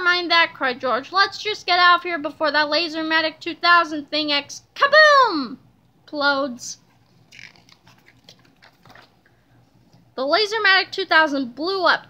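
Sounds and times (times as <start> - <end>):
book page turning: 6.9 - 9.2.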